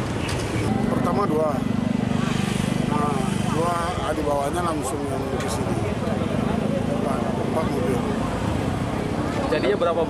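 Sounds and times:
vehicle engine running: 0.5 - 9.0.

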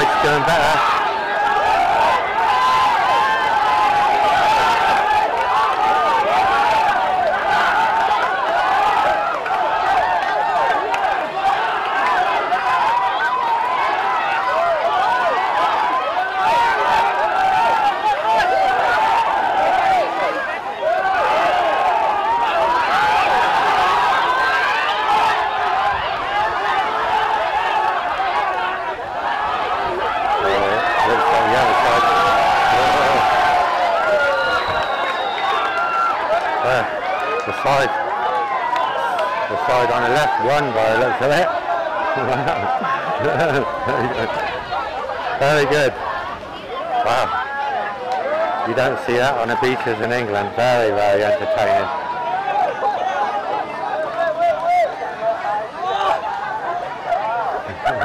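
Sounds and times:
large crowd calling out: 0.0 - 58.0.

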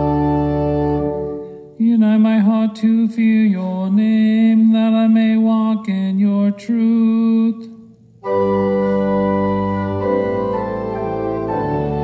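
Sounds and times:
organ: 0.0 - 4.7, 8.1 - 12.0.

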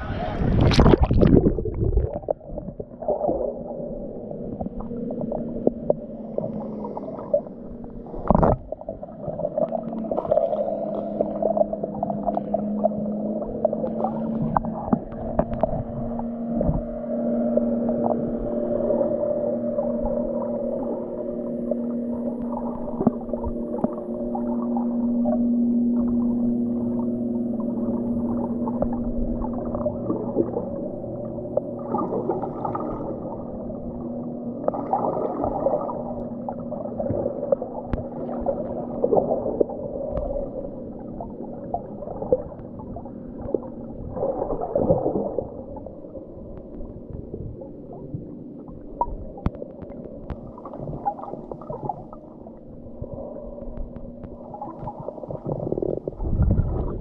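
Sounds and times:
low underwater hum: 0.0 - 57.0
sharp clicks and crackles: 48.9 - 52.2
sharp underwater clicks: 49.0 - 52.3, 53.6 - 56.8.

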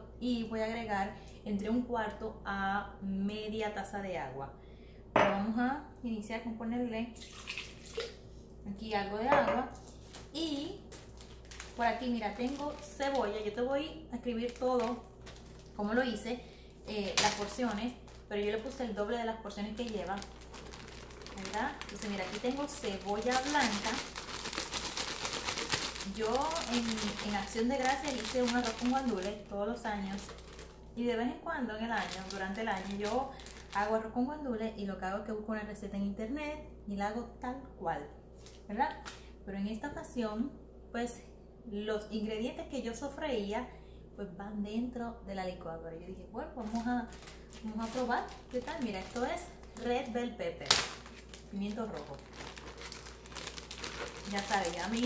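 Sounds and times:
plastic bag crinkling: 9.8 - 16.2, 16.8 - 31.0, 31.8 - 34.0, 46.6 - 55.0.

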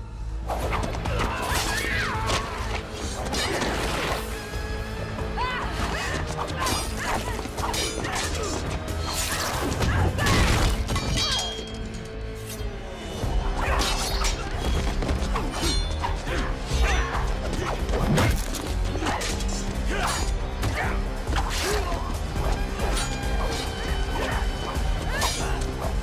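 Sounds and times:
action music score: 0.0 - 26.0.

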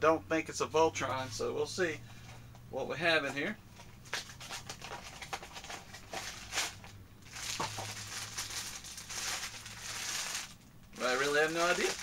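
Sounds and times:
wrapper crinkling: 4.1 - 12.0.

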